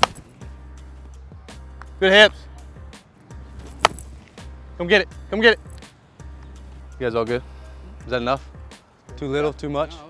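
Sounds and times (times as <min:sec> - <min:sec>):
baseball bat cracking ball: 0:00.0 - 0:00.3, 0:03.7 - 0:04.1
background music: 0:00.0 - 0:10.0.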